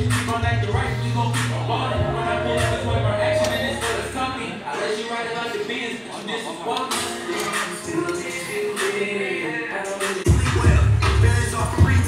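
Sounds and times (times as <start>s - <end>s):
rapping over hip-hop music: 0.0s - 12.0s.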